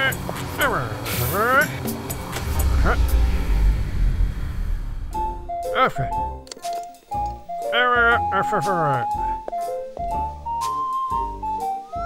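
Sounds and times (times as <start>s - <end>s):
background music: 0.0s - 12.0s
low machine rumble: 1.9s - 6.3s.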